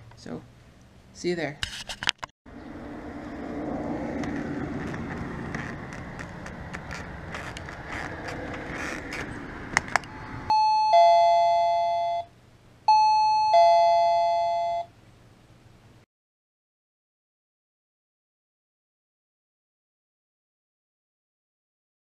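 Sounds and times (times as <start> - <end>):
outdoor background noise: 0.0 - 16.1
doorbell ding-dong chime: 10.5 - 12.3, 12.9 - 14.9.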